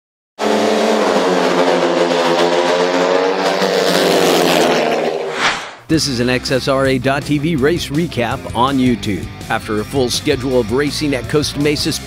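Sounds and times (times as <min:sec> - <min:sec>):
racing engine at high revs: 0:00.4 - 0:05.8.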